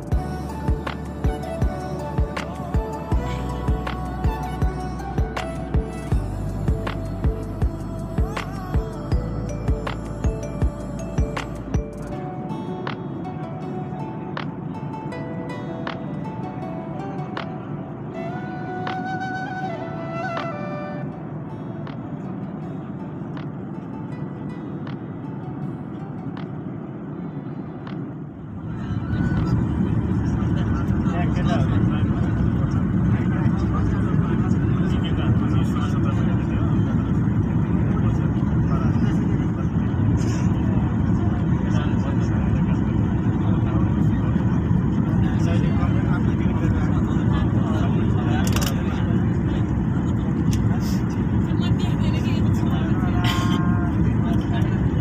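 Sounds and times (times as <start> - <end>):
jet airliner cabin noise: 9.9 - 55.0.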